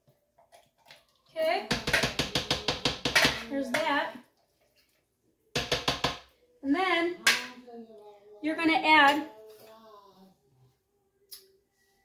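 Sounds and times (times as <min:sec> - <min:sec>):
spatula rapping on stoneware: 0:01.7 - 0:03.9.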